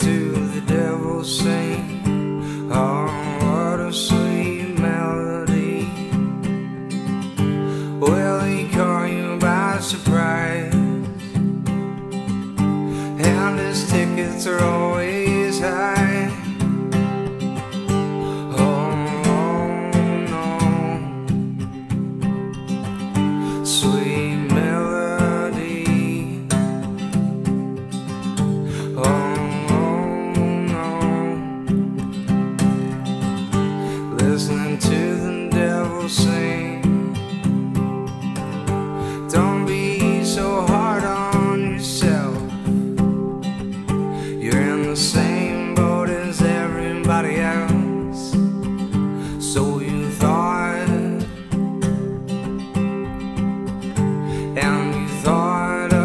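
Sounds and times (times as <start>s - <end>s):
man singing: 0.0s - 11.8s, 12.9s - 22.0s, 22.8s - 32.2s, 32.8s - 53.2s, 53.8s - 56.0s
acoustic guitar strumming: 0.0s - 56.0s.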